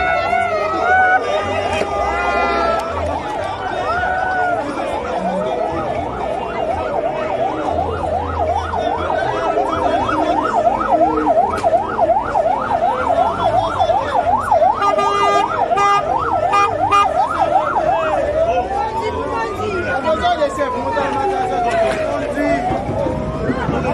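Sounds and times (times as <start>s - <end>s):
electronic vehicle siren: 0.0s - 23.9s.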